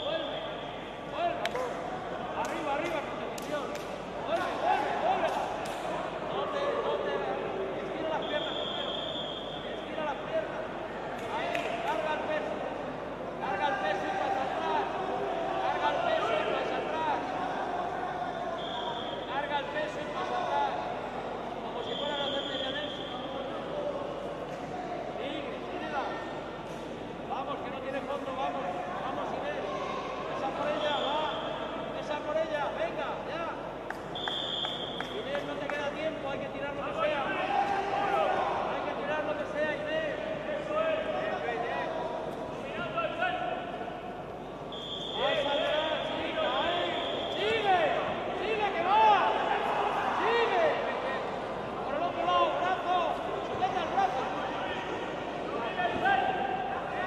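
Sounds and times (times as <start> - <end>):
referee whistle blasts: 8.2 - 9.7, 18.6 - 19.4, 21.8 - 23.3, 30.8 - 31.6, 34.2 - 35.2, 44.7 - 47.7.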